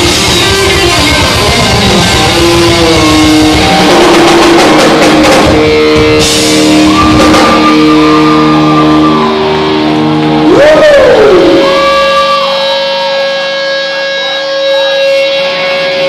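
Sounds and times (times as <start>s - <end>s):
live rock band: 0.0s - 16.0s
sustained electric guitar notes: 0.0s - 16.0s.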